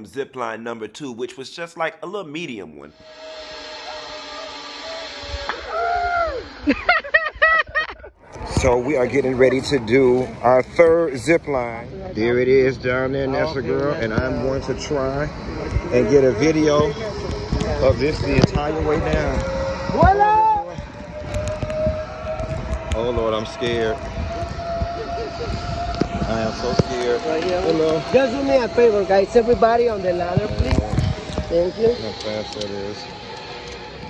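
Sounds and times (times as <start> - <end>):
zip-line pulley whining on cable: 2.9 - 34.0.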